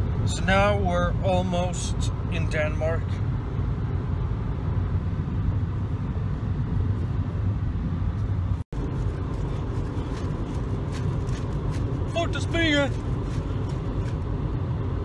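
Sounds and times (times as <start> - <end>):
road and engine rumble in car: 0.0 - 15.0.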